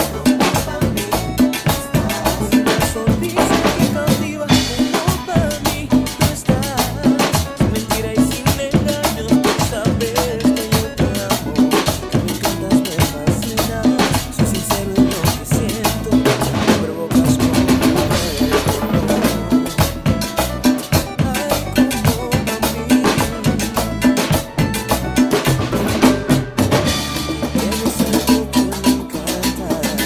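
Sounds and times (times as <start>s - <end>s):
congas played by hand: 0.0s - 30.0s
drum kit: 0.0s - 30.0s
low pitched bass line: 0.0s - 30.0s
metal scraper in rhythm: 0.0s - 30.0s.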